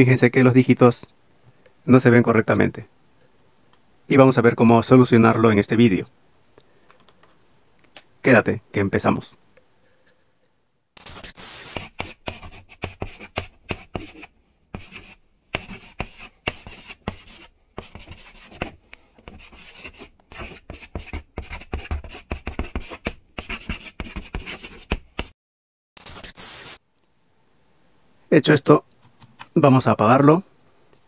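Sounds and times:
chalk tapping and scratching: 0:11.0 - 0:25.3, 0:26.0 - 0:26.8.

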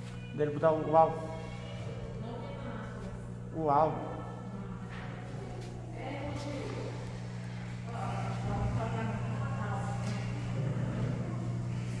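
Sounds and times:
faint voices murmuring: 0:00.0 - 0:12.0
steady low hum: 0:00.0 - 0:12.0.

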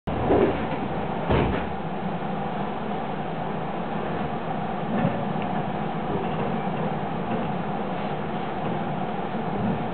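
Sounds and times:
electric train hum: 0:00.1 - 0:09.9.

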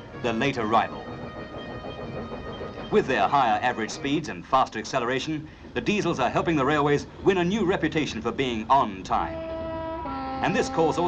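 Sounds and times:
train running on track: 0:00.0 - 0:11.0.

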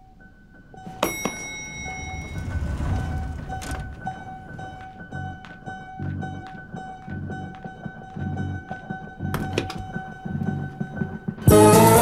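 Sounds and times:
thud: 0:01.0 - 0:05.2.

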